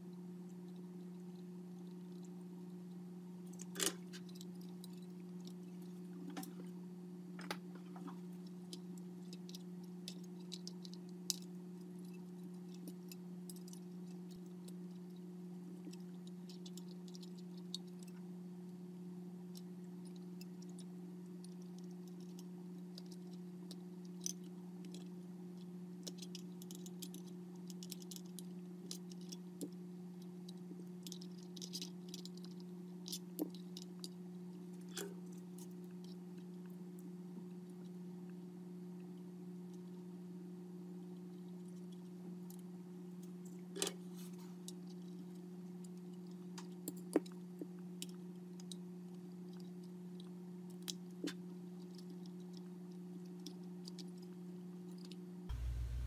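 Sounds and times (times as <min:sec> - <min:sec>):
steady low hum: 0:00.0 - 0:46.6, 0:55.4 - 0:56.0.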